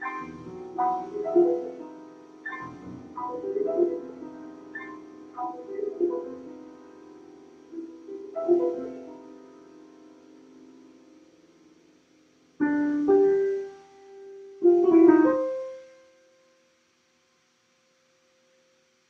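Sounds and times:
slow solo piano chords: 0.0 - 16.4.

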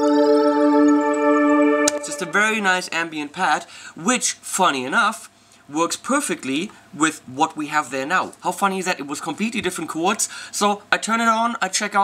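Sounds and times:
ambient synthesizer pad: 0.0 - 2.9.

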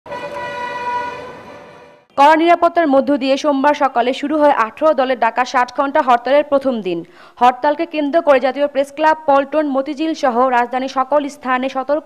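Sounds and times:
street traffic noise: 0.1 - 2.2
vehicle horn blast: 0.1 - 2.2.

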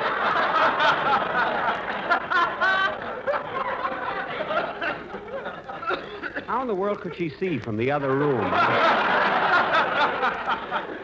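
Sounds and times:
audience laughing: 0.0 - 11.0.

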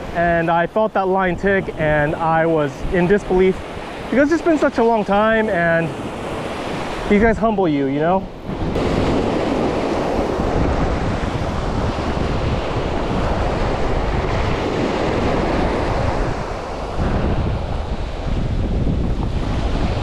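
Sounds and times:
surf breaking on beach: 0.0 - 20.0
wind buffeting microphone: 0.0 - 20.0.

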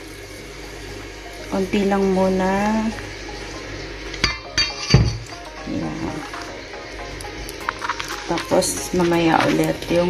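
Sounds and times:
metal bowls clinking: 4.1 - 6.4.

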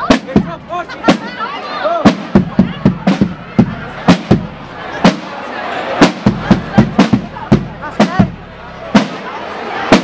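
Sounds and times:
crowd voices: 0.0 - 10.0
loud drum strokes: 6.0 - 10.0.

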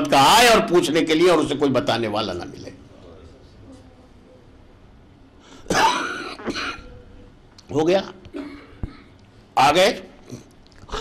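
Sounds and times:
man clearing his throat: 5.7 - 6.9.

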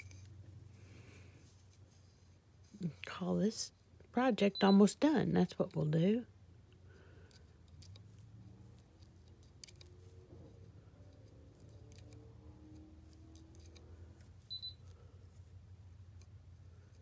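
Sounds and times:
faint room hum: 0.0 - 17.0.

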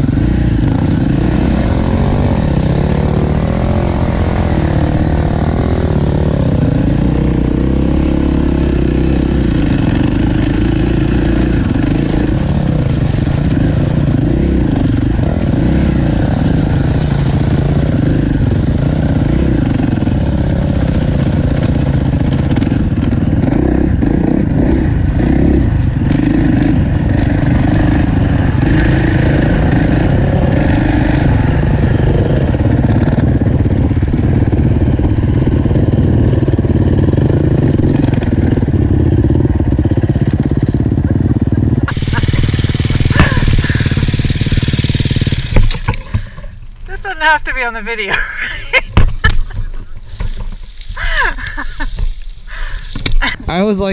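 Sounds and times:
dirt bike engine revving: 0.0 - 53.9.

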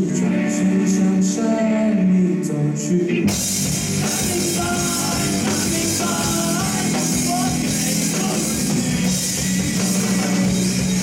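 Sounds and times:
rock band playing loud: 0.0 - 11.0
person singing: 4.0 - 8.8.

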